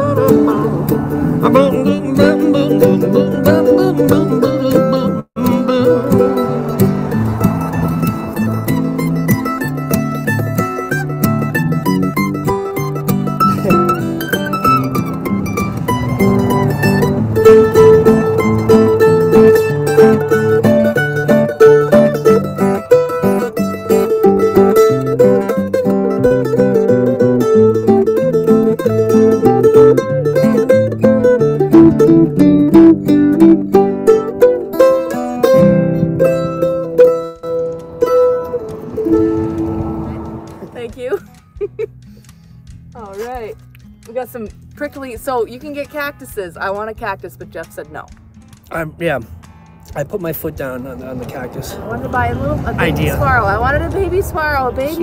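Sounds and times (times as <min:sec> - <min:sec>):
mandolin melody: 0:00.0 - 0:55.0
strummed acoustic guitar: 0:00.0 - 0:55.0.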